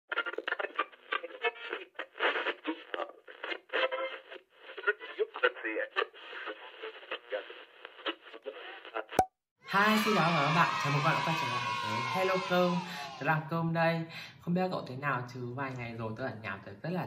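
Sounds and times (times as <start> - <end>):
radio-like voice: 4.9 - 9.2.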